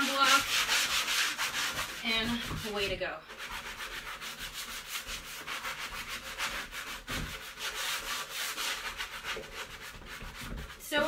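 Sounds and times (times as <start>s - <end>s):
sanding block rubbing on wood: 0.0s - 11.0s.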